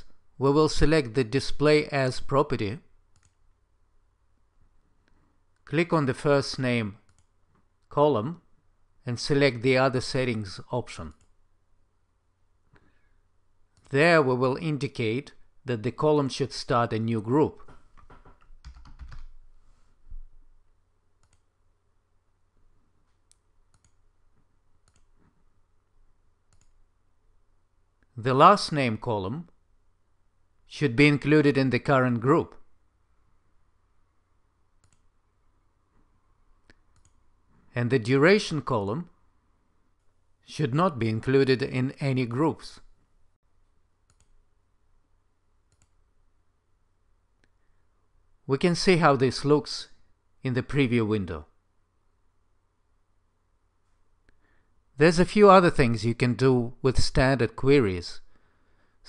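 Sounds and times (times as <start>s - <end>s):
faint computer mouse clicks: 3.1s - 3.4s, 7.1s - 7.6s, 21.2s - 21.5s, 23.2s - 24.0s, 24.8s - 25.4s, 26.5s - 26.8s, 34.8s - 35.1s, 36.6s - 37.2s, 44.1s - 44.4s, 45.7s - 46.0s.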